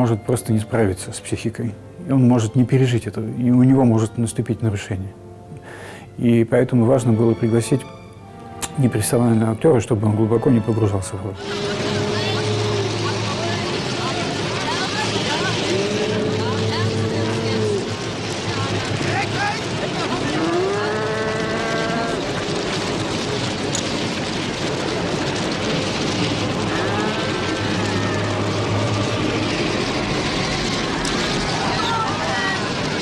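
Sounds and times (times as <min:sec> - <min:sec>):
film soundtrack music: 0:00.0 - 0:20.2
dense noisy rumble: 0:08.6 - 0:33.0
scattered voices: 0:11.4 - 0:22.5, 0:24.8 - 0:33.0
vehicle engine running: 0:11.4 - 0:33.0.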